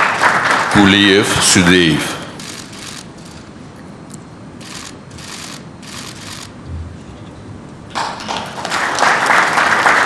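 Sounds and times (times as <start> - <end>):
audience applause: 0.0 - 1.1, 7.9 - 10.0
short sharp noise bursts: 2.0 - 3.7, 4.5 - 7.2.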